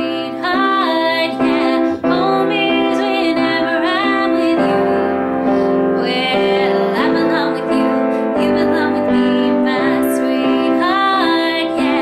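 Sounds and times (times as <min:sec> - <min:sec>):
piano chords: 0:00.0 - 0:12.0
woman singing: 0:00.0 - 0:12.0.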